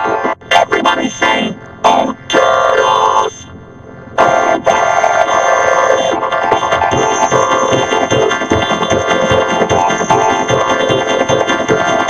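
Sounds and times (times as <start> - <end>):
pitch-shifted buzzy cartoon soundtrack: 4.2 - 12.0.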